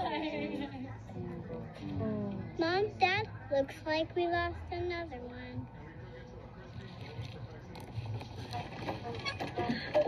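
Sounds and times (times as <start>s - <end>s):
film soundtrack from tv speakers: 0.0s - 10.0s.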